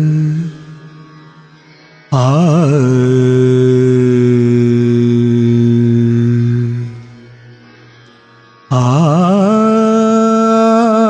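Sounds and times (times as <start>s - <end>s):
man singing sustained notes: 0.0s - 8.0s, 8.6s - 11.0s.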